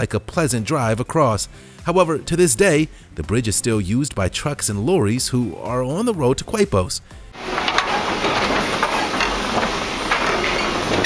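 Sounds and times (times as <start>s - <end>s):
vehicle rattling over bridge deck: 7.4s - 11.0s.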